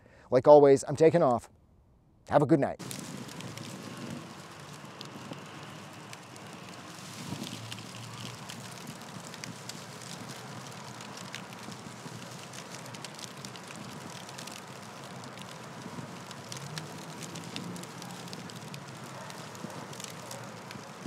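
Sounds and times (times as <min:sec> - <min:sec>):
steady crackling hiss: 0:02.8 - 0:21.0.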